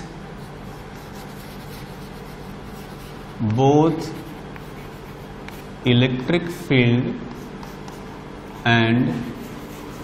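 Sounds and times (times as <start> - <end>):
chalk scratching on chalkboard: 0.4 - 5.7, 7.2 - 10.0.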